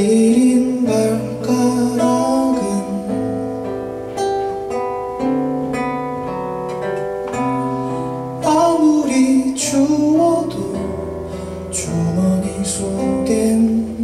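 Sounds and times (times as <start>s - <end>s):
man singing: 0.0s - 3.5s, 8.4s - 14.0s
classical guitar plucked notes: 0.0s - 14.0s.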